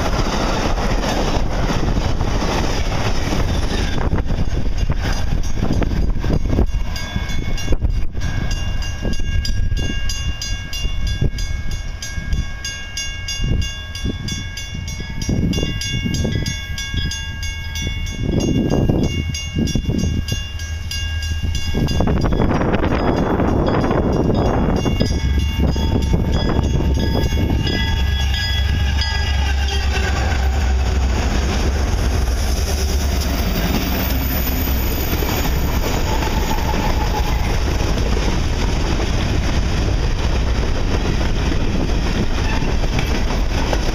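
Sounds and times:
diesel locomotive rumble: 0:00.0 - 0:12.6, 0:13.4 - 0:43.9
wheel and rail noise: 0:00.0 - 0:43.9
train horn in several tones: 0:27.6 - 0:31.1.

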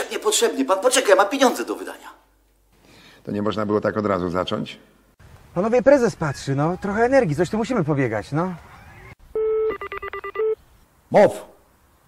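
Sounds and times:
telephone dial tone: 0:08.8 - 0:10.6
keypad dialing beeps: 0:09.4 - 0:10.6.

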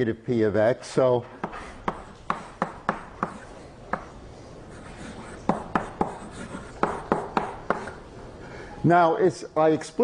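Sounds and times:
chalk tapping on blackboard: 0:01.4 - 0:04.2, 0:04.8 - 0:08.0.

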